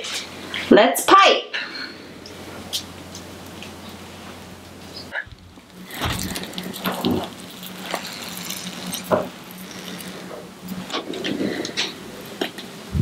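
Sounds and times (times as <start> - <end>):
steady low hum: 0.0 - 13.0
piping bag squishing: 5.3 - 12.3.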